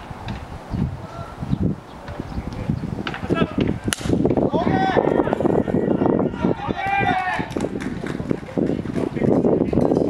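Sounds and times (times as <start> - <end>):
baseball bat cracking ball: 3.9 - 4.2
voices shouting: 4.4 - 7.8.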